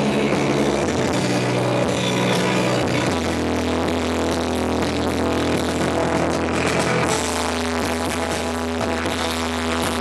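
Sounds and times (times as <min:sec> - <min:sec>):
electronic music with bass: 0:00.0 - 0:10.0.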